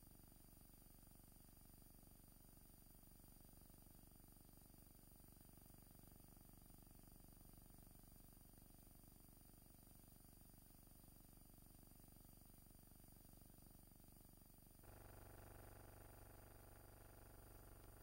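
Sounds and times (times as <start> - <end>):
faint hum and hiss: 0.0 - 18.0.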